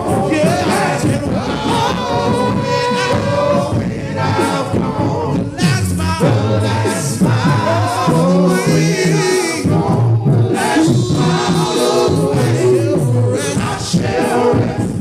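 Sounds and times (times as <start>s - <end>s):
choir singing a cappella: 0.0s - 15.0s.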